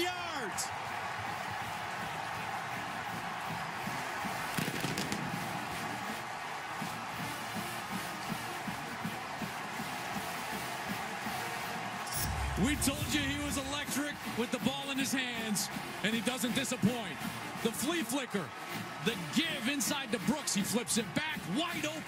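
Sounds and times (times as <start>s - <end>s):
stadium crowd cheering: 0.0s - 22.0s
band music: 12.1s - 14.2s.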